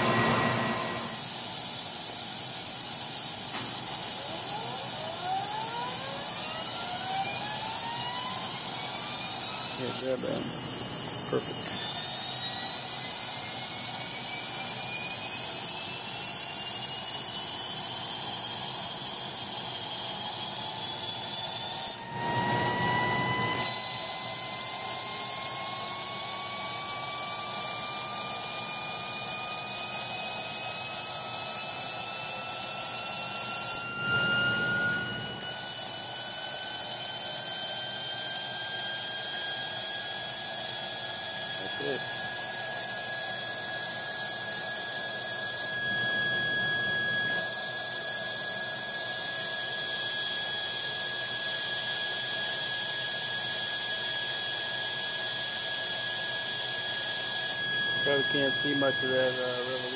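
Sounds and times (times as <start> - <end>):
high-speed spindle whine rising: 0.0 - 59.9.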